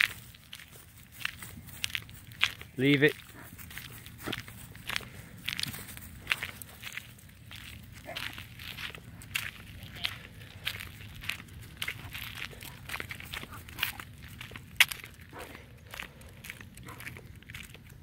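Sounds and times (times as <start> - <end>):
footsteps on asphalt and grass: 0.0 - 18.0.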